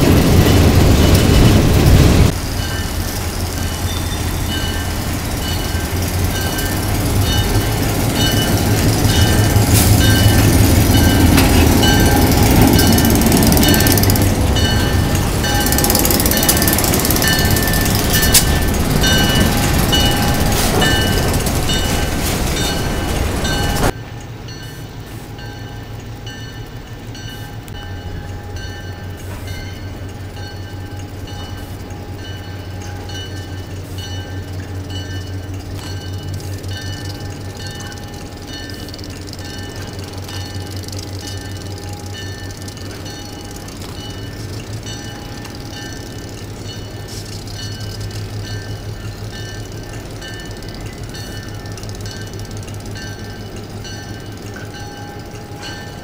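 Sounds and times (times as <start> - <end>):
diesel locomotive engine running: 0.0 - 56.0
locomotive bell ringing: 0.0 - 56.0.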